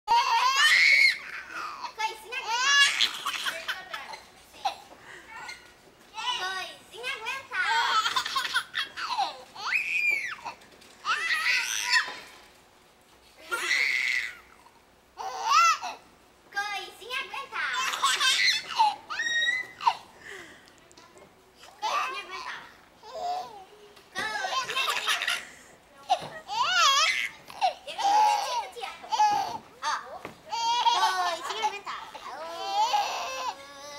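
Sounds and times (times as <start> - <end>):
baby laughing: 7.7 - 9.4
baby squealing: 17.9 - 20.0.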